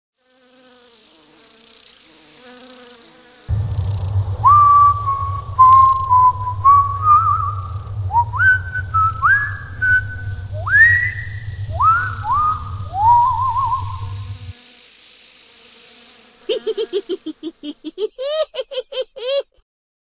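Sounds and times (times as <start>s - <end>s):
eerie gliding whistle tones: 3.5s - 14.5s
steady low hum: 3.5s - 14.5s.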